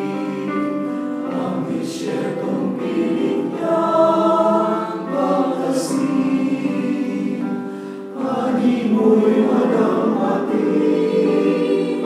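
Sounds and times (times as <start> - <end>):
mixed choir singing: 0.0 - 12.0.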